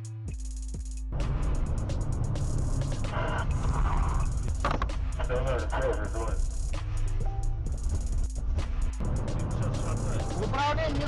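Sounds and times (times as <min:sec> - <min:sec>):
engine and road noise rumble: 0:01.1 - 0:11.0
background music with held notes: 0:04.6 - 0:11.0
man speaking: 0:05.2 - 0:06.4, 0:09.4 - 0:10.5.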